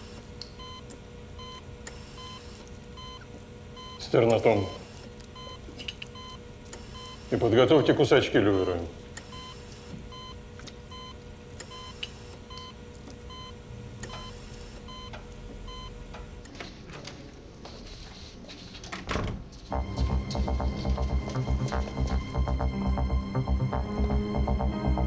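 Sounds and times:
patient monitor beeping: 0:00.0 - 0:16.3, 0:19.7 - 0:25.0
dramatic music with pulsing beat: 0:19.7 - 0:25.0
low hum: 0:19.7 - 0:25.0.

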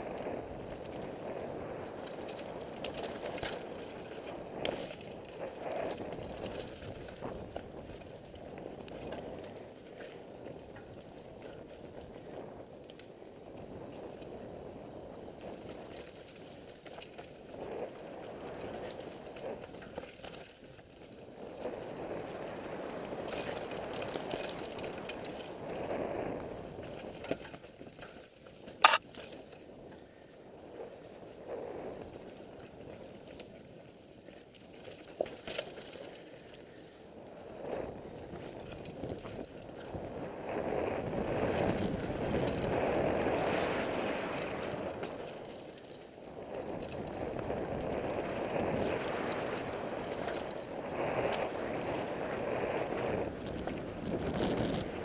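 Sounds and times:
bike rolling rumble with rattles: 0:00.0 - 0:55.0.

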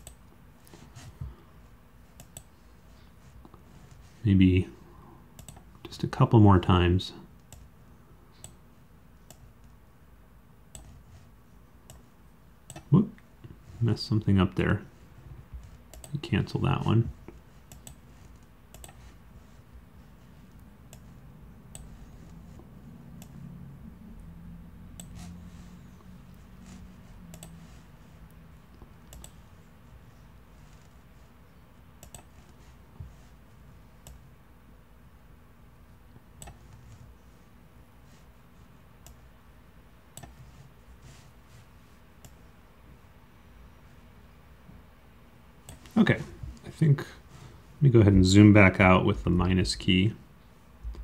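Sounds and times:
computer mouse clicks: 0:00.0 - 0:00.8, 0:02.2 - 0:02.5, 0:05.4 - 0:05.7, 0:10.7 - 0:11.0, 0:12.7 - 0:12.9, 0:15.9 - 0:16.2, 0:17.6 - 0:19.1, 0:21.7 - 0:22.0, 0:25.0 - 0:25.3, 0:27.3 - 0:27.6, 0:29.0 - 0:29.4, 0:32.0 - 0:32.6, 0:36.4 - 0:36.9, 0:40.1 - 0:40.5
faint low hum: 0:00.0 - 0:51.0.

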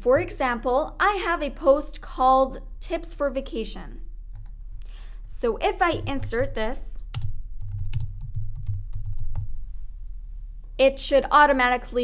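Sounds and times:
typing on computer keyboard: 0:07.1 - 0:09.5.

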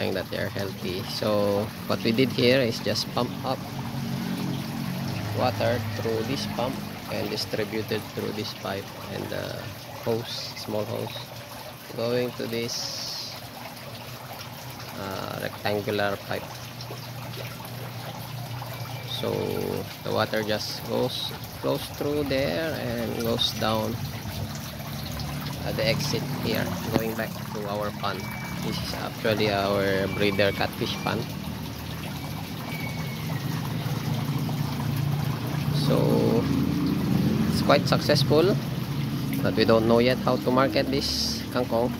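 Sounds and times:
water splashing into pond: 0:00.0 - 0:41.9.

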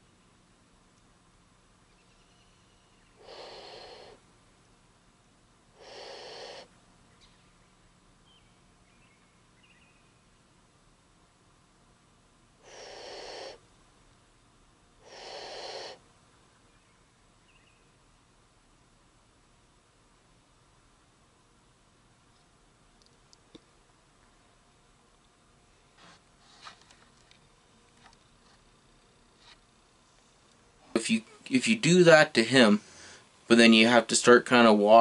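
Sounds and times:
bear huffing snort-wheeze: 0:03.2 - 0:04.2, 0:05.8 - 0:06.7, 0:12.6 - 0:13.6, 0:15.0 - 0:16.0
person imitating bear huffs: 0:05.8 - 0:06.7, 0:12.6 - 0:13.6, 0:15.0 - 0:16.0.

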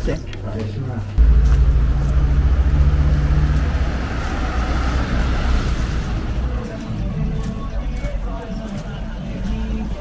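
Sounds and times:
road noise: 0:01.1 - 0:10.0
vehicle engine rumble: 0:01.2 - 0:10.0.

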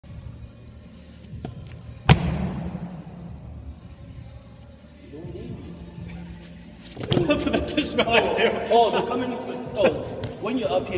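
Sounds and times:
feet landing thud: 0:06.8 - 0:07.4.

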